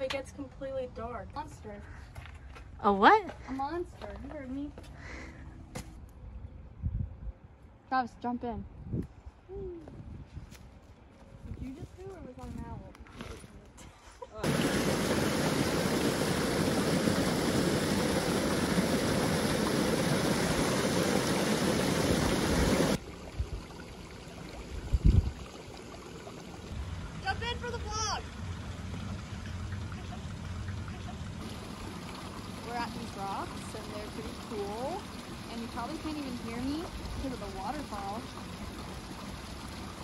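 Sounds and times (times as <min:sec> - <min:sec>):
waterfall rushing: 0:14.4 - 0:23.0
running stream: 0:14.4 - 0:40.0.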